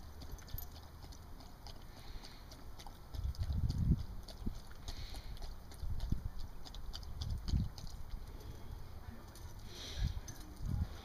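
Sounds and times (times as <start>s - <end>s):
dog lapping water: 0.0s - 8.5s.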